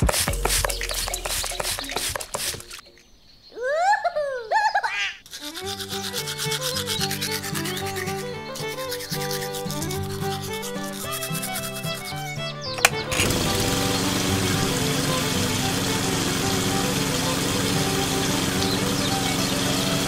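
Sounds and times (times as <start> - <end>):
toothbrush scrubbing plastic: 0.0 - 2.8, 5.3 - 12.2
water spray hissing: 0.0 - 2.8, 5.3 - 20.0
background music: 5.6 - 20.0
click: 12.7 - 13.4
electric water pump humming: 12.8 - 20.0.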